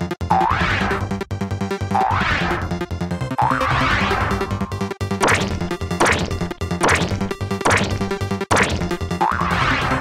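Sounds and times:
music with steady beat: 0:05.0 - 0:09.3
cartoon whack sound effects: 0:05.2 - 0:09.8.

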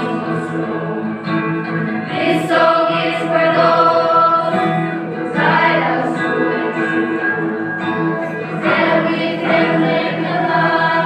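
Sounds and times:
mixed choir singing: 0:00.0 - 0:07.6, 0:08.2 - 0:11.0
guitar accompaniment: 0:00.0 - 0:11.0.

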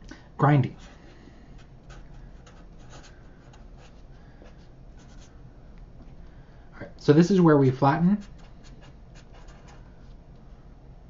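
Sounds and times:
marker scratching on paper: 0:00.7 - 0:01.0, 0:01.6 - 0:05.4, 0:08.2 - 0:09.9.

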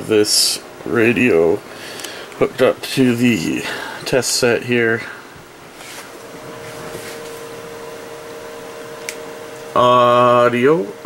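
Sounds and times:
low two-note hum: 0:00.0 - 0:11.0
steady static hiss: 0:00.0 - 0:11.0.

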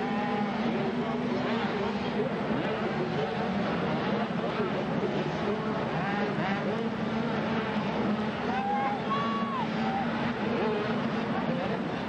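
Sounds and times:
motocross bike engines revving: 0:00.0 - 0:12.0
voices: 0:00.0 - 0:12.0.

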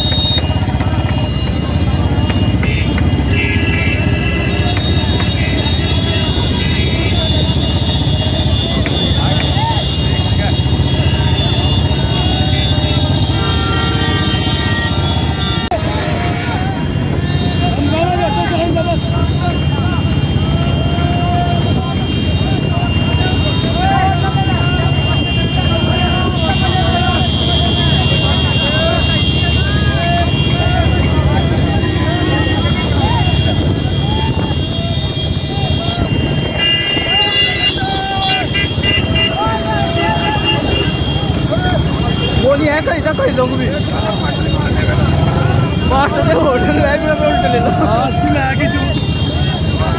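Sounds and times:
horns tooting: 0:00.0 - 0:49.9
men shouting: 0:05.4 - 0:49.9.

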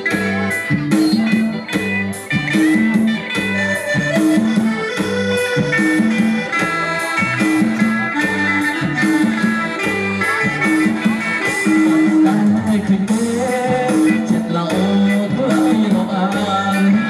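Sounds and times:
keyboard melody: 0:00.0 - 0:17.0
repeating bass beat: 0:00.0 - 0:17.0.

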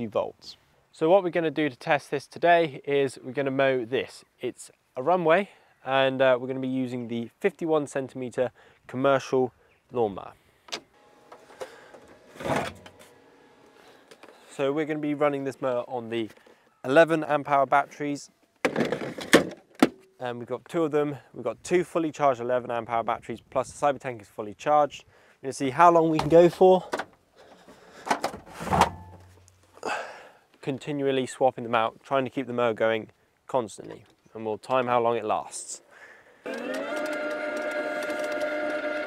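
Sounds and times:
battery pack sliding out of port: 0:10.7 - 0:14.4
equipment scraping and clattering: 0:11.0 - 0:14.6, 0:27.7 - 0:29.4.

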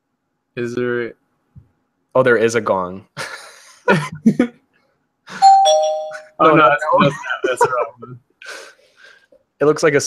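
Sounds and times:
two-note ding-dong chime: 0:05.4 - 0:06.4.

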